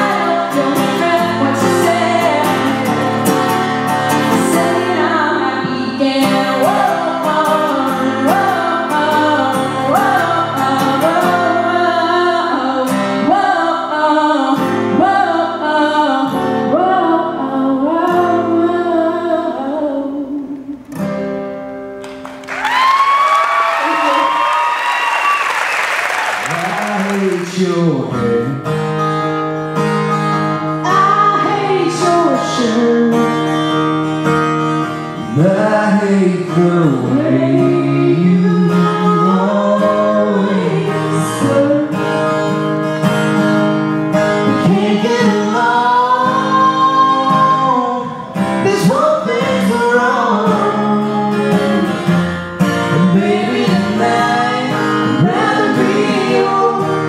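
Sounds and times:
woman singing: 0.0 - 20.8, 30.8 - 33.4, 37.0 - 42.1, 44.5 - 48.1, 48.7 - 51.9, 52.9 - 57.0
acoustic guitar: 0.0 - 57.0
audience applause and cheering: 22.0 - 27.6.

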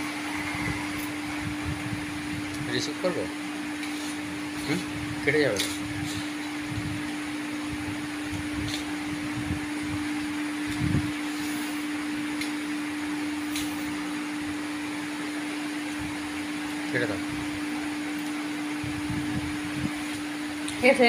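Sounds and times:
mechanical hum: 0.0 - 21.0.

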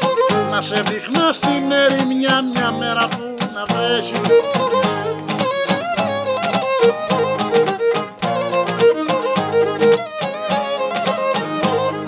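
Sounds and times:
bowed lyra dance melody: 0.0 - 12.0
plucked lute and guitar rhythm: 0.0 - 12.0.

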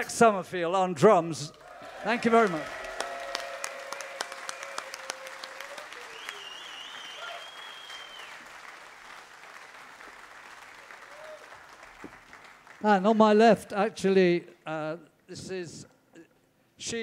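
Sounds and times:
audience applause: 1.6 - 12.8.

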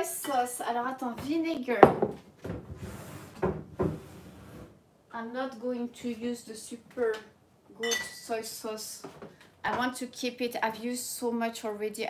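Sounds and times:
cupboard door opening and shutting: 1.8 - 4.8.

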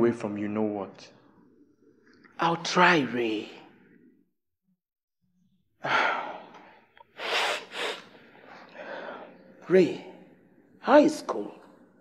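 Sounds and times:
short sharp breaths: 7.1 - 9.4.

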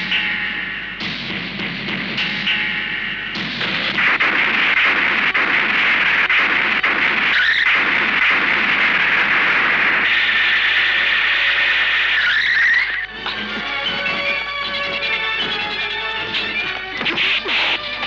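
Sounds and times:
heavy rain: 4.0 - 13.7
wavering high-pitched squeal: 10.1 - 18.0.

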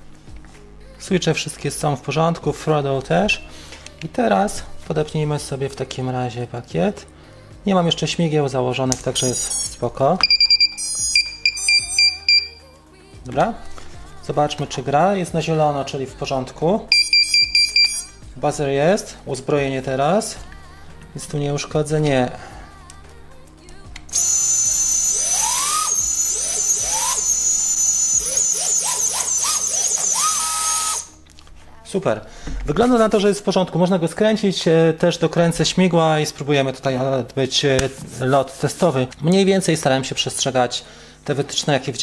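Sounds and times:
high-pitched electronic beeps: 9.2 - 12.7, 16.9 - 18.2, 24.1 - 31.2
drone motors whining: 24.1 - 31.2.

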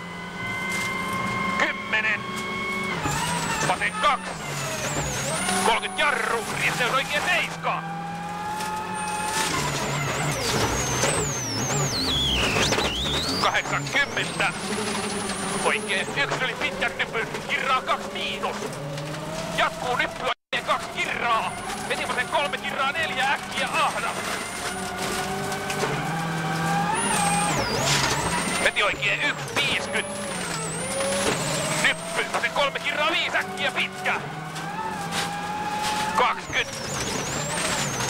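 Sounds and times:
gravel and tyre noise: 0.0 - 38.0
rally car engine whine: 0.0 - 38.0.

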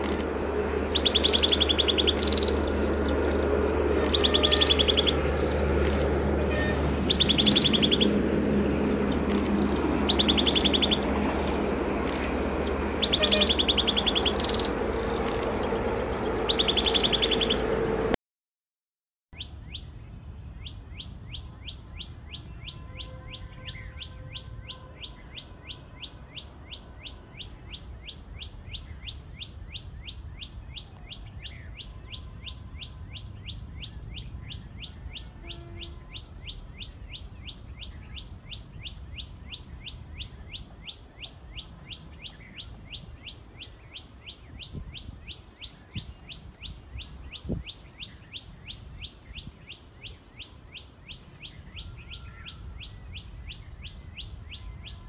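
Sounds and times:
higher bird chirps: 0.8 - 17.8, 19.4 - 55.0
bird repeating sharp call: 4.0 - 5.2, 13.0 - 14.7.

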